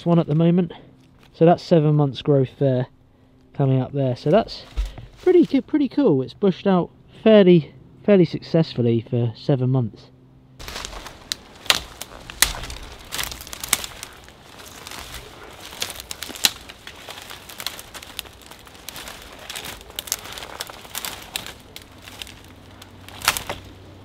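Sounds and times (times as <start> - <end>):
footsteps through undergrowth: 0.0 - 1.4, 3.6 - 5.8, 10.6 - 24.0
twigs snapping underfoot: 0.0 - 1.4, 10.6 - 24.0
leaves rustling: 4.0 - 5.9, 10.6 - 24.0.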